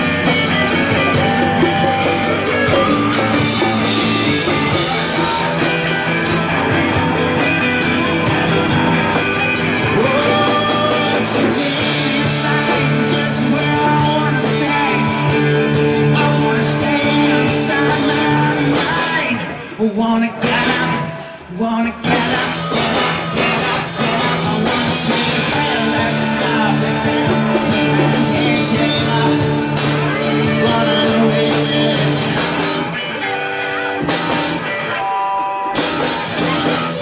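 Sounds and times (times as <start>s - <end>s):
electric guitar: 0.0s - 37.0s
rock band playing: 0.0s - 37.0s.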